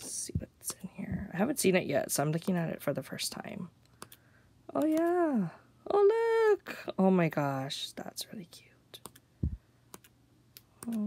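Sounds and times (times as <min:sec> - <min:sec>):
soft low thump: 0:09.4 - 0:09.6.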